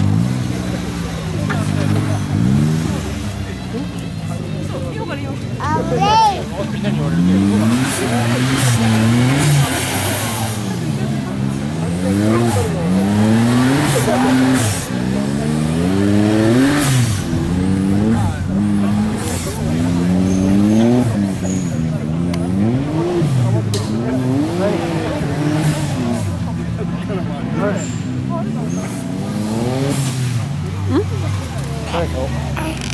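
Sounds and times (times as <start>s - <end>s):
off-road vehicle engine revving: 0.0s - 32.9s.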